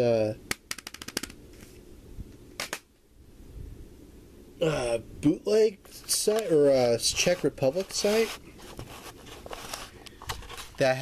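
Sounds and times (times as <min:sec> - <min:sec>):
short rustle: 0:07.0 - 0:10.9.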